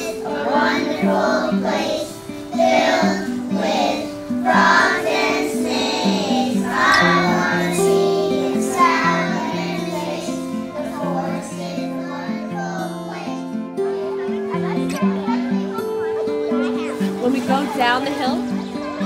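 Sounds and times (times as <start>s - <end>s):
children singing in unison: 0.0s - 14.4s.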